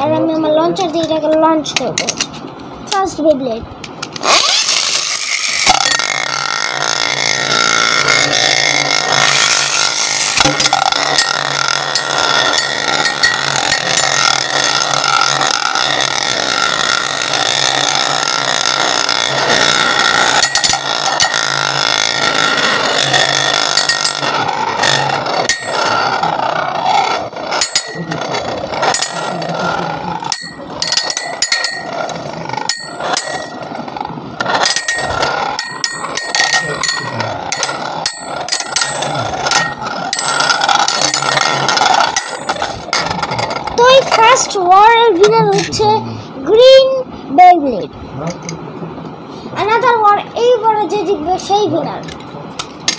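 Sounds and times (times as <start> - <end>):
metal spinning tops whirring: 0.0 - 46.8, 48.5 - 52.9
spinning tops clacking: 3.8 - 45.9.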